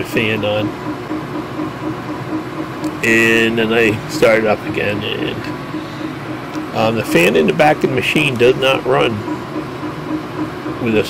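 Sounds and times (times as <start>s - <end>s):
fans humming: 0.0s - 11.0s.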